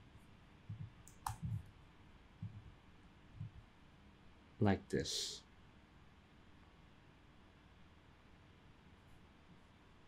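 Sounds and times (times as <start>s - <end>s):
computer mouse clicks: 0.7s - 1.7s.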